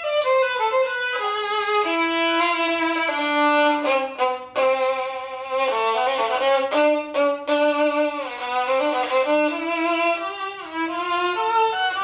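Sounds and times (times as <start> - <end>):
solo bowed violin melody: 0.0 - 12.0.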